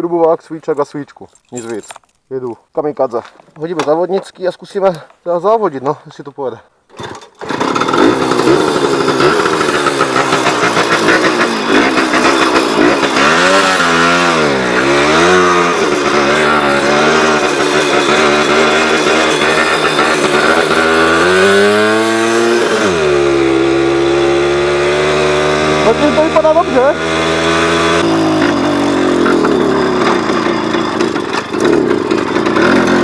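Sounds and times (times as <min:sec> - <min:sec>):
two-stroke moped engine revving: 0:06.9 - 0:33.0.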